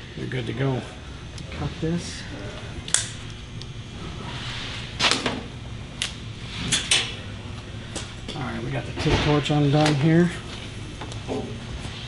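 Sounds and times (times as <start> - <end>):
sharp clicks and snaps: 2.9 - 3.7.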